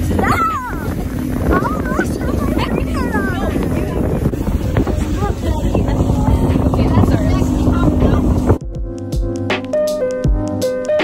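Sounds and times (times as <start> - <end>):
wind on microphone: 0.0 - 8.7
motorboat engine running: 0.0 - 9.3
girl yelling: 0.2 - 0.9.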